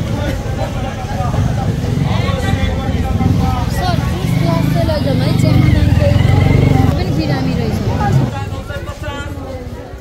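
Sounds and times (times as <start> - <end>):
crowd chatter: 0.0 - 10.0
vehicle engine running: 1.2 - 8.3.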